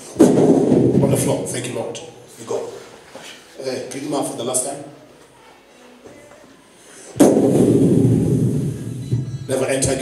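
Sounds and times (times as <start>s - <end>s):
loud thump: 0.2s - 1.4s, 7.2s - 9.4s
speech: 1.0s - 2.8s, 3.6s - 5.0s, 9.5s - 10.0s.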